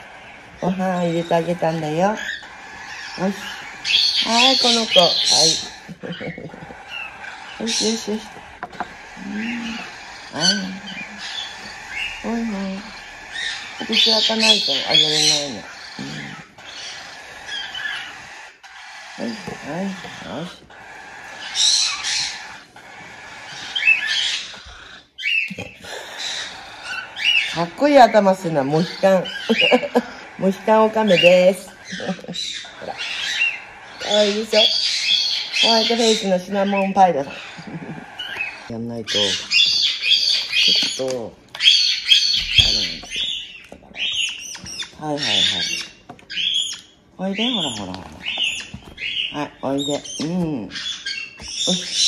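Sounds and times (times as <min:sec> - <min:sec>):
chick making high begging chirps: 0:00.0 - 0:52.0.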